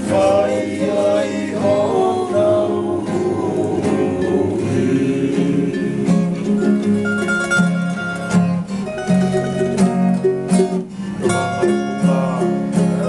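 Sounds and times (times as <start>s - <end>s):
acoustic guitars playing: 0.0s - 13.0s
quick plucked string notes: 3.3s - 13.0s.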